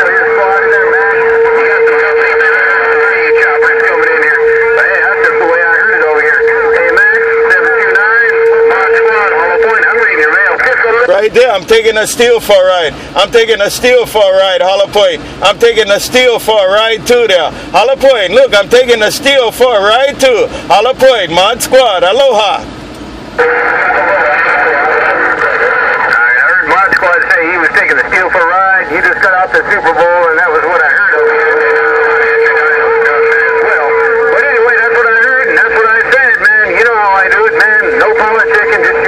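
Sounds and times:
steady radio whistle: 0:00.0 - 0:11.5, 0:23.4 - 0:39.0
garbled voice over radio speaker: 0:00.0 - 0:22.6, 0:23.4 - 0:39.0.

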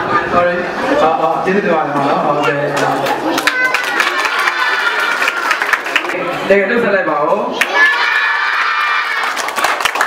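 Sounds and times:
children shouting and cheering: 0:03.1 - 0:06.0, 0:07.5 - 0:10.0.

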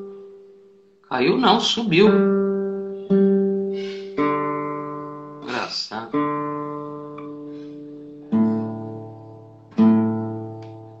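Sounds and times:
guitar strings plucked: 0:01.8 - 0:11.0.

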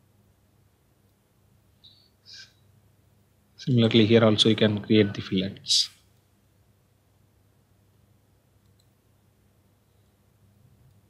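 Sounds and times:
faint low hum: 0:00.0 - 0:11.0
computer mouse clicks: 0:08.6 - 0:09.0.

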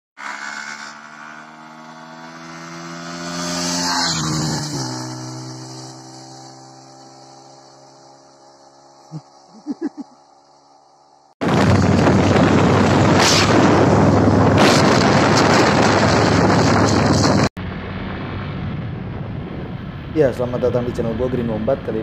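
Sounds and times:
motorcycle passing by: 0:00.2 - 0:11.3.

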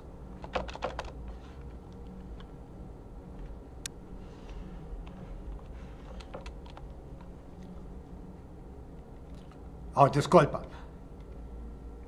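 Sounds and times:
computer keyboard keystrokes: 0:00.4 - 0:01.2, 0:06.1 - 0:06.9.

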